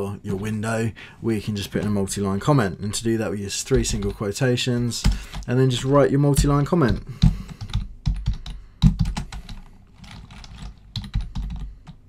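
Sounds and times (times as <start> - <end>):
typing on computer keyboard: 6.4 - 12.0.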